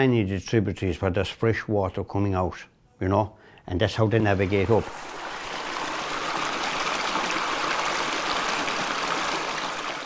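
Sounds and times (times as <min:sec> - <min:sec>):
river water rushing: 0:04.3 - 0:10.0.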